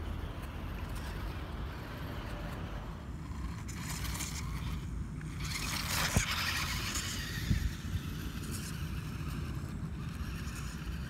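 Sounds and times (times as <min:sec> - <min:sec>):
small electric motor and gears: 0:00.0 - 0:11.0
wind rumble on microphone: 0:05.4 - 0:11.0.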